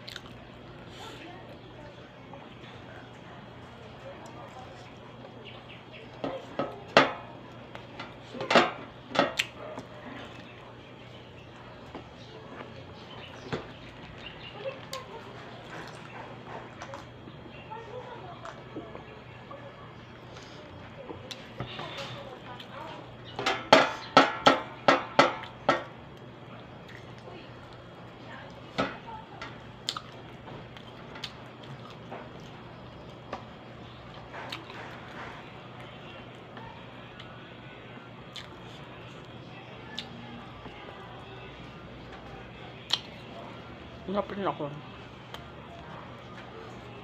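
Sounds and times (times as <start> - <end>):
chewing mouth sounds: 0.0 - 0.4, 29.8 - 32.6
steady low hum: 0.0 - 47.0.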